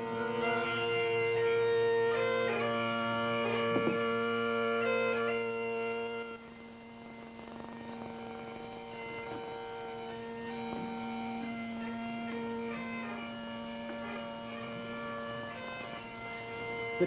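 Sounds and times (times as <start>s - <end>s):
bagpipe chanter melody: 0.0s - 17.0s
bagpipe drone: 0.0s - 17.0s.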